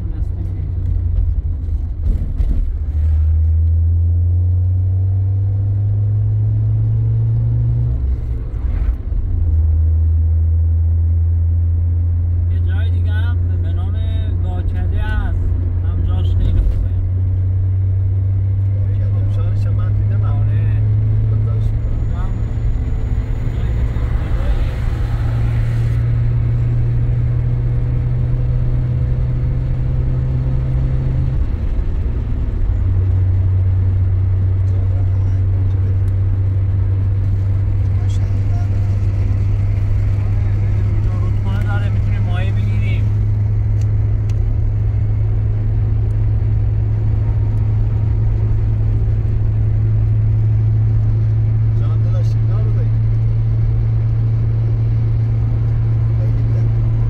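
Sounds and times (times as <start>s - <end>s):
car engine drone: 0.0s - 57.0s
road noise inside car: 0.0s - 57.0s.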